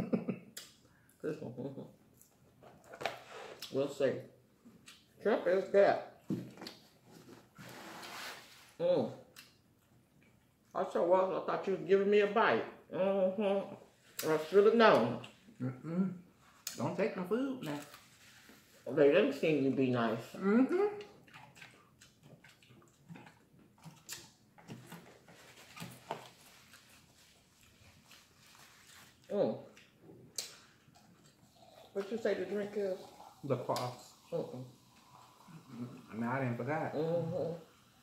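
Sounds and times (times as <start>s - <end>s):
person humming: 15.6s - 16.2s
chewing: 20.9s - 32.0s.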